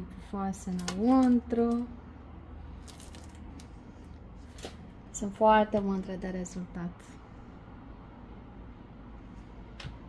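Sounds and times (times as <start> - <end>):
bread crust crackling: 2.7 - 4.9.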